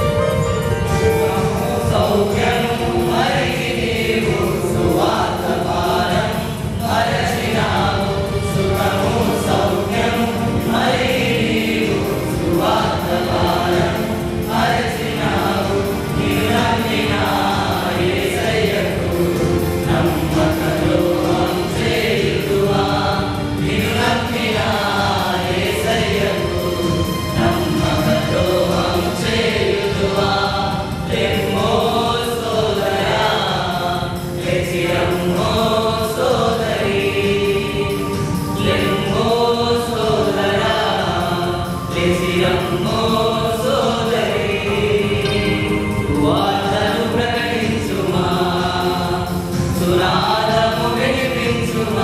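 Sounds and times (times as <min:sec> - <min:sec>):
male choir singing: 0:00.0 - 0:52.0
musical backing: 0:00.0 - 0:52.0.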